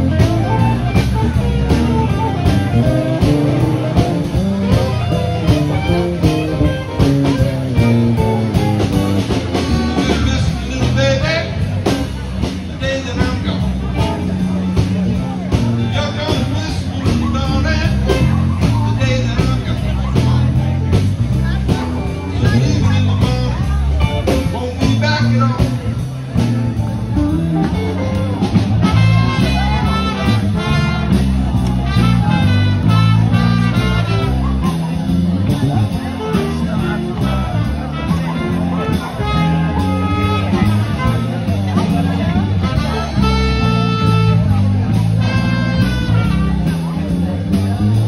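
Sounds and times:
bass line: 0.0s - 48.0s
drum kit: 0.0s - 48.0s
electric guitar: 0.0s - 48.0s
keyboards: 0.0s - 48.0s.

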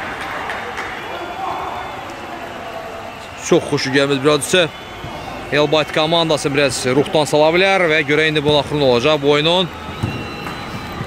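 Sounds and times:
distant players' voices: 0.0s - 11.0s.

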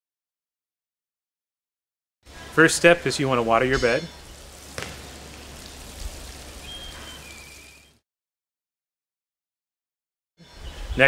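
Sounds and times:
watering can sprinkling on soil: 3.0s - 8.0s.

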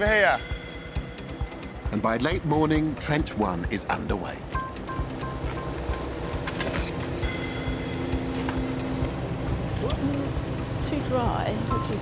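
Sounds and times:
excavator diesel engine: 1.3s - 12.0s
steady whine: 4.4s - 12.0s.

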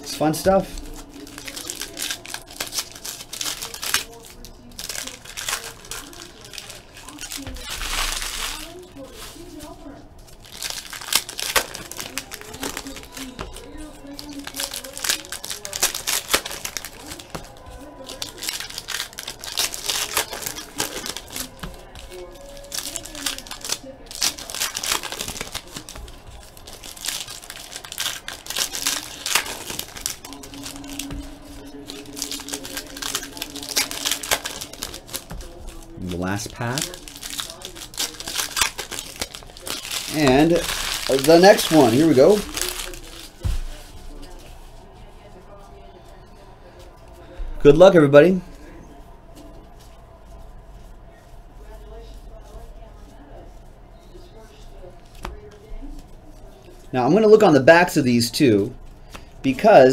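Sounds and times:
card wrappers crinkling: 0.0s - 48.4s.

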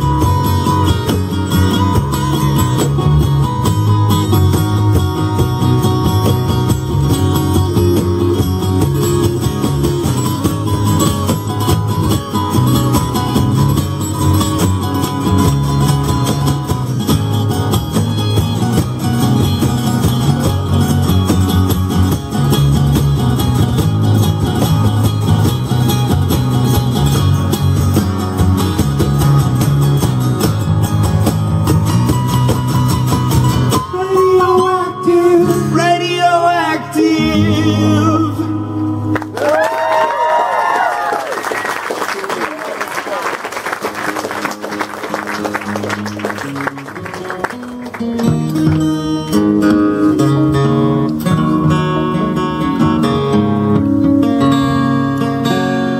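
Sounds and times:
acoustic guitars strumming: 0.0s - 39.4s, 43.6s - 55.9s
person singing: 33.9s - 38.7s.

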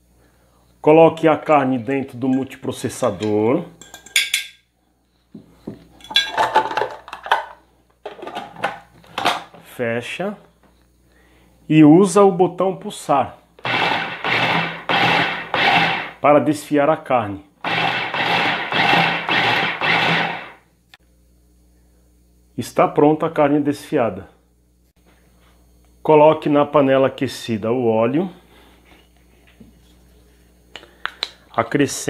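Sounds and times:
food processor motor whirring: 13.6s - 16.2s, 17.6s - 20.6s.

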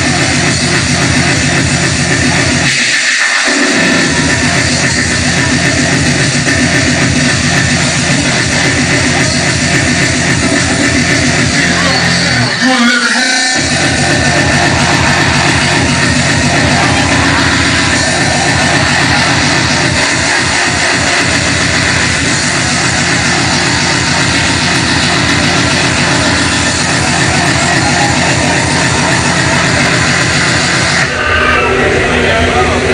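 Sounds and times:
hardcore electronic dance music: 0.0s - 32.9s.

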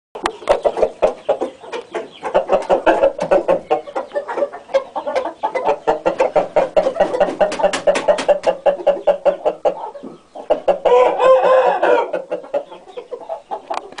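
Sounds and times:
chickens clucking: 0.2s - 14.0s
rooster crowing: 10.8s - 12.2s.

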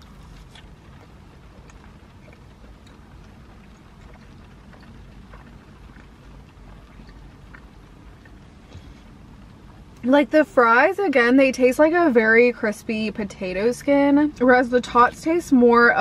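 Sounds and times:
rain on a car roof: 0.0s - 12.5s.

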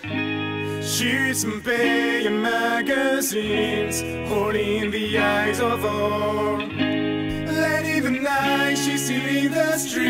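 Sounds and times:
grunge rock music: 0.0s - 10.0s.

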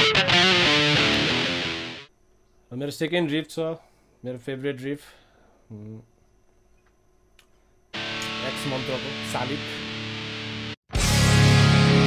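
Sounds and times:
electric guitar riff: 0.0s - 2.1s, 8.0s - 12.0s.

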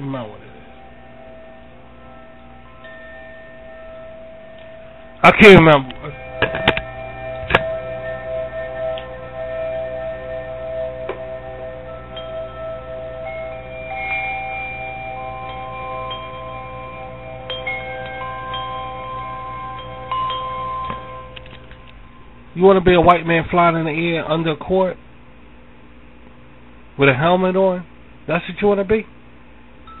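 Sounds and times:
low drone: 0.0s - 24.1s
ringing chime-like tones: 0.0s - 24.5s.

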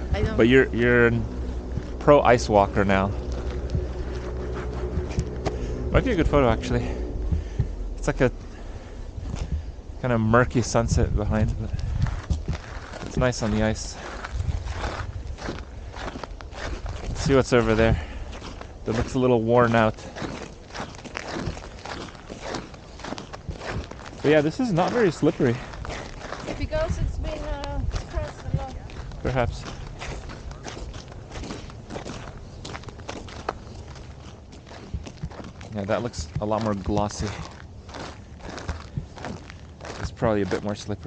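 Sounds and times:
boots walking on snowy ice: 0.0s - 9.6s, 11.2s - 41.0s
wind buffeting microphone: 0.0s - 41.0s.

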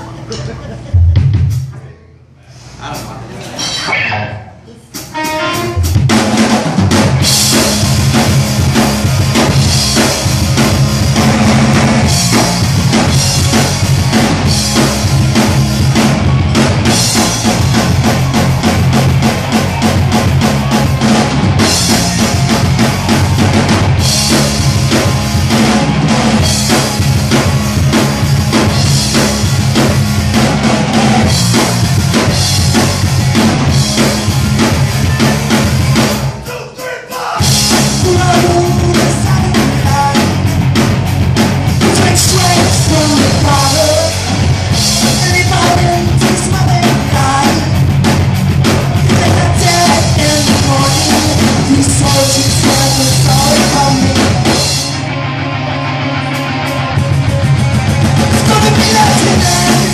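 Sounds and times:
punk rock band playing: 0.0s - 1.8s, 4.9s - 59.9s.

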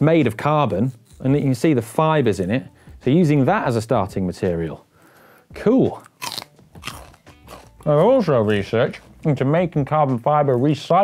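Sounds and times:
chewing crunch: 5.9s - 9.3s
celery crunching: 5.9s - 10.8s.

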